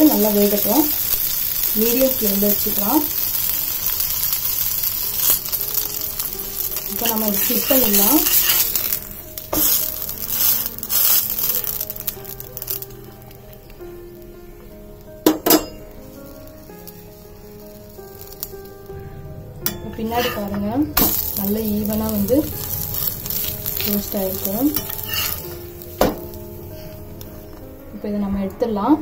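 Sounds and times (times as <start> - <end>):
food sizzling in fat: 0.0 - 29.0.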